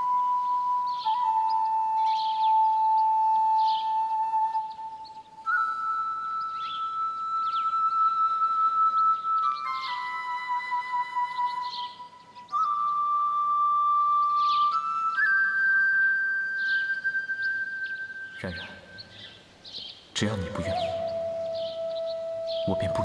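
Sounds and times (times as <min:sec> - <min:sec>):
bamboo flute slow melody: 0:00.0 - 0:23.0
birds chirping: 0:00.0 - 0:23.0.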